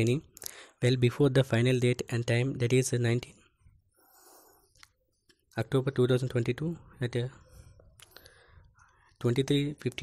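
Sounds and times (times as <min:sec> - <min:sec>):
faint breath: 0:03.9 - 0:04.8, 0:07.4 - 0:09.2
man speaking: 0:05.5 - 0:07.5.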